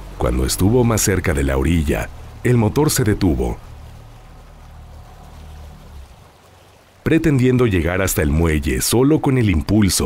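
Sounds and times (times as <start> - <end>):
low steady drone: 0.0 - 6.2
rushing water: 0.0 - 10.0.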